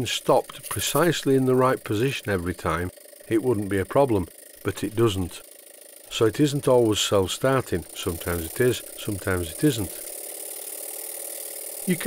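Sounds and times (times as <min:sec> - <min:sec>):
steam engine hissing: 0:06.0 - 0:12.0.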